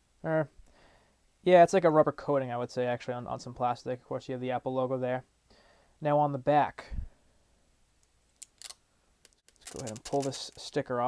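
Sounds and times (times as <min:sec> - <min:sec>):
fingers rustling plastic film: 0:08.3 - 0:10.8.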